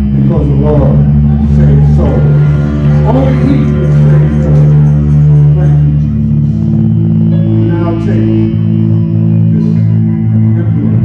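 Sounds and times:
electric bass held low notes: 0.0s - 11.0s.

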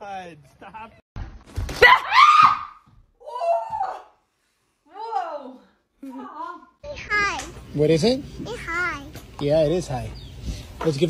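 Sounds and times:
woman screaming in fright: 1.8s - 4.2s.

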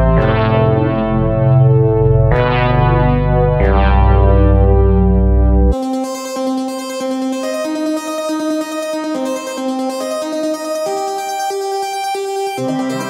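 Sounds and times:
deep bass: 0.0s - 5.8s
buzzy synth notes: 0.0s - 13.0s
high keyboard-like line: 5.7s - 13.0s.

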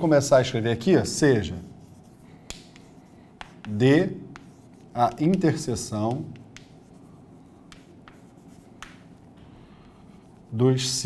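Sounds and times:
chalk scratching on chalkboard: 0.8s - 11.0s
chalk tap: 1.7s - 10.5s.

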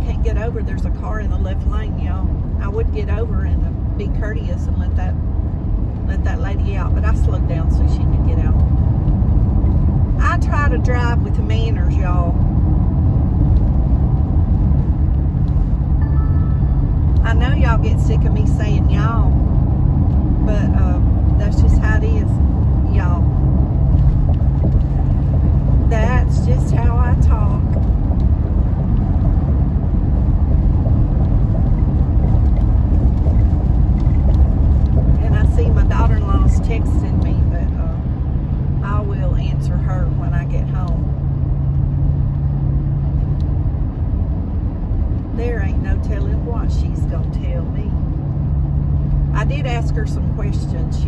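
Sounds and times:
car road and engine rumble: 0.0s - 51.0s
low steady hum: 0.0s - 51.0s.

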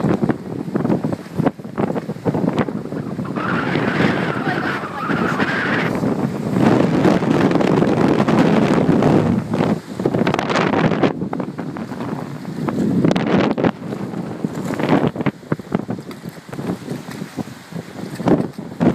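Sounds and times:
wind buffeting microphone: 0.0s - 18.9s.

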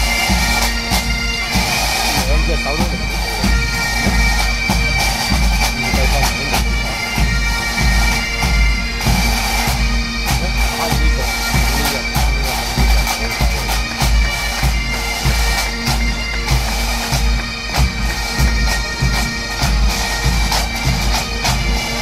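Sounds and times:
bagpipes playing: 0.0s - 22.0s
drums beating: 0.0s - 22.0s.

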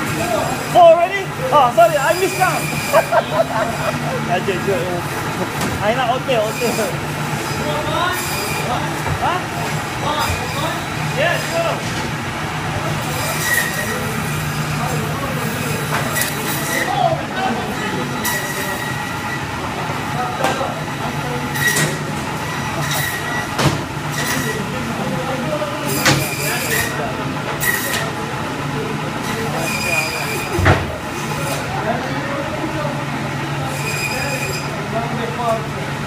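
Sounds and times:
machinery hum: 0.0s - 25.9s
faint indistinct voices: 0.0s - 36.0s
high metallic squeals: 1.8s - 3.9s, 13.0s - 14.4s, 17.7s - 19.5s, 22.5s - 23.5s, 29.3s - 30.6s, 33.6s - 34.8s.

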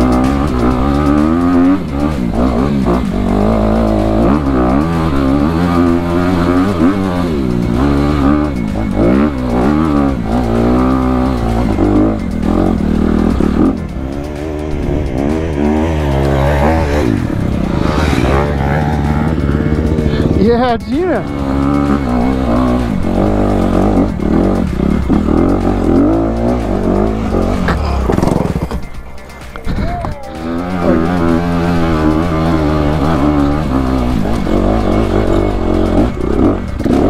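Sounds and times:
dirt bike engine revving: 0.0s - 37.0s.

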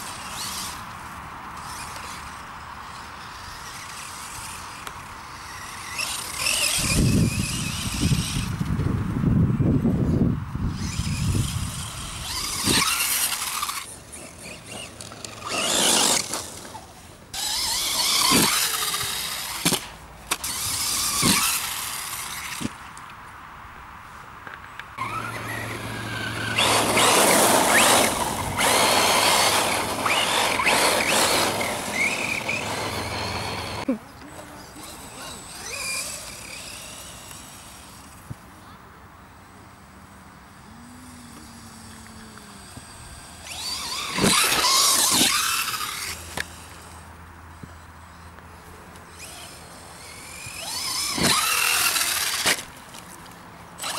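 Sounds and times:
tyre noise: 10.7s - 23.0s, 40.6s - 47.0s, 49.0s - 53.9s
electric motor whine: 25.0s - 38.2s, 40.5s - 48.2s, 49.1s - 53.0s.

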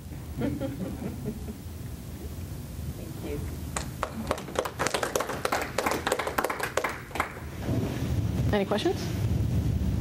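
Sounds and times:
audience applauding: 3.8s - 7.5s.

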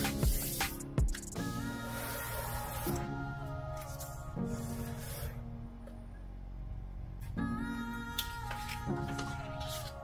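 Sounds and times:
paper rustling: 8.5s - 10.0s.

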